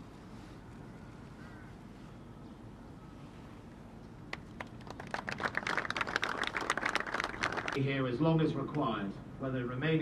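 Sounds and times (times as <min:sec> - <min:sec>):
audience applause: 0:04.6 - 0:07.8.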